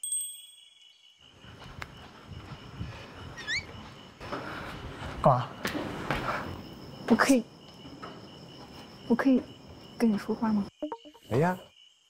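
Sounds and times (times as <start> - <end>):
high rising chirps: 0.3 - 4.2
footsteps on stairs: 1.3 - 9.9.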